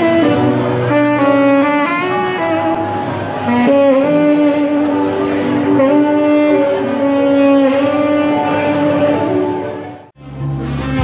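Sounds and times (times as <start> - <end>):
tenor saxophone slow melody: 0.0 - 11.0.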